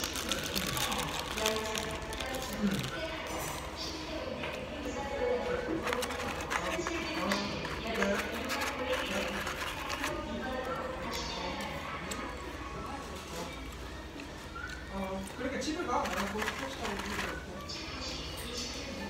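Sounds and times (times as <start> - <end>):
paper wrapper crinkling: 0.0 - 3.7, 5.7 - 10.2, 15.9 - 17.5
people talking: 0.0 - 19.0.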